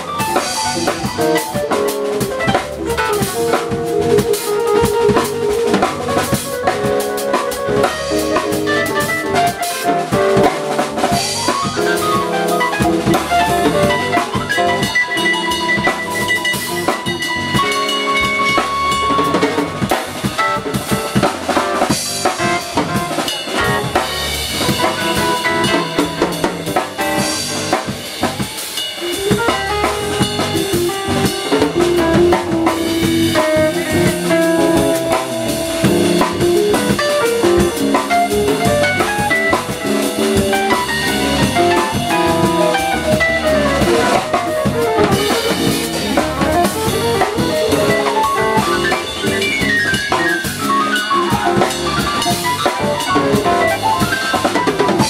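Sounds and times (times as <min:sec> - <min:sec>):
drum kit: 0:00.0 - 0:55.0
jazz quartet playing: 0:00.0 - 0:55.0
keyboard chords and runs: 0:00.0 - 0:55.0
upright bass: 0:00.0 - 0:55.0.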